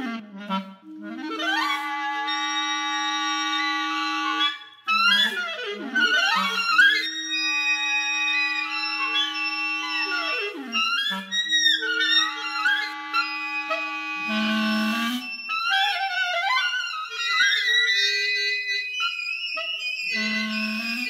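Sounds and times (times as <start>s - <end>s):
clarinets playing long held notes: 0.0s - 21.0s.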